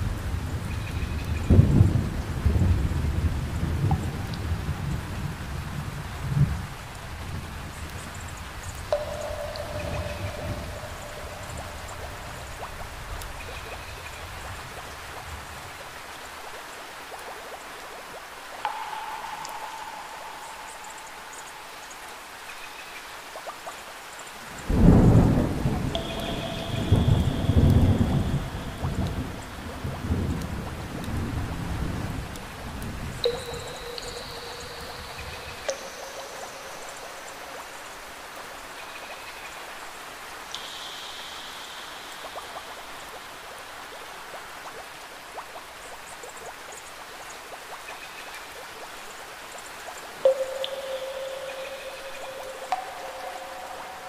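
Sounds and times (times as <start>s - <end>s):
steady rain: 0.0s - 54.0s
soft held tones: 8.9s - 12.6s, 18.6s - 22.6s, 25.9s - 29.5s, 33.2s - 38.2s, 50.2s - 54.0s
thunder rumbling: 24.7s - 33.8s.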